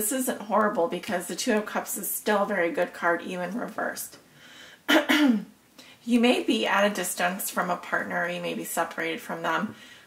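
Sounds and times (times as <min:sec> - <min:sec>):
woman clearing her throat: 0:04.9 - 0:05.5.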